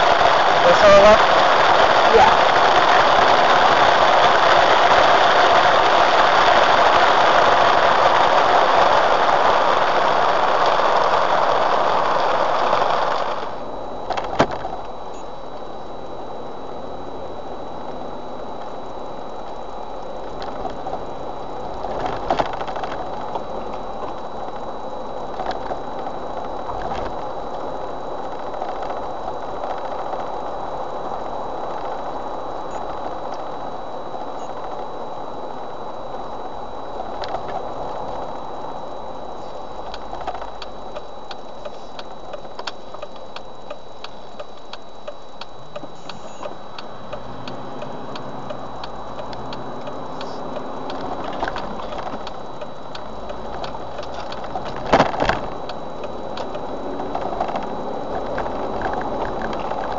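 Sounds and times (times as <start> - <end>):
rain on car roof: 0.0 - 14.6, 50.7 - 59.9
engine and road noise: 0.0 - 59.9
faint high whine: 0.0 - 59.9.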